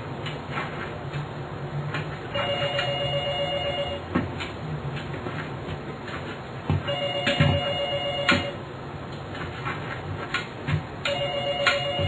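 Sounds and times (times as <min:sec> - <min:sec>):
low steady hum: 0:00.0 - 0:12.0
telephone ringing: 0:02.3 - 0:04.1, 0:06.9 - 0:08.6, 0:11.1 - 0:12.0.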